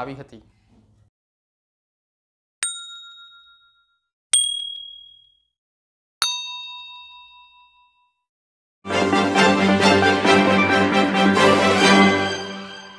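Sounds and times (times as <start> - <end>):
chime ding: 2.6 - 5.5, 6.2 - 8.2.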